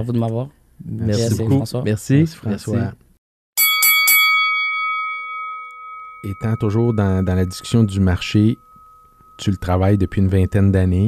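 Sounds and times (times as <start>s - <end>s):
boxing ring bell: 3.6s - 11.0s.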